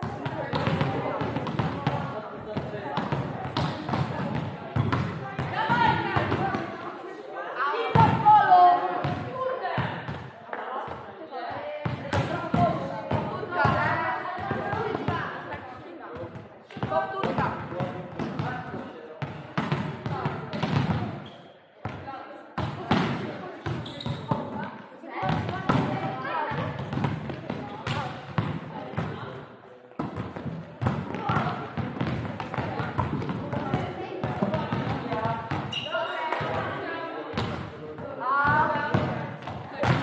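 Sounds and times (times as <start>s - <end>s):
volleyballs slapping and thudding: 0.0s - 6.8s, 11.8s - 21.2s, 22.6s - 29.3s, 30.0s - 35.7s, 36.3s - 40.0s.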